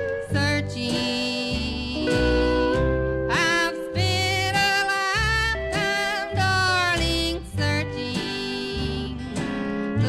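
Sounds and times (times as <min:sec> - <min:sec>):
bass: 0:00.0 - 0:10.0
country song with vibrato melody: 0:00.0 - 0:10.0
strummed acoustic guitar: 0:00.0 - 0:10.0.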